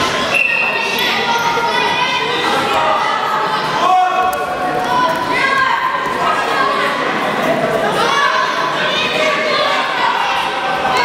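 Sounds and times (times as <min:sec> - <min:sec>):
people talking and calling out: 0:00.0 - 0:11.0.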